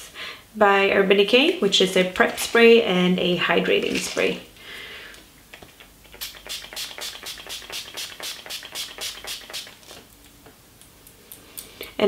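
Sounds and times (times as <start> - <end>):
spray bottle hissing: 6.2 - 9.9.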